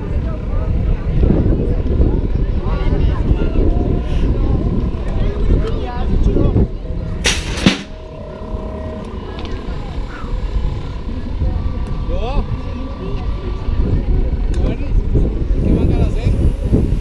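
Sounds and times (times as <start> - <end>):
faint voices: 0.0 - 17.0
wind buffeting microphone: 0.0 - 17.0.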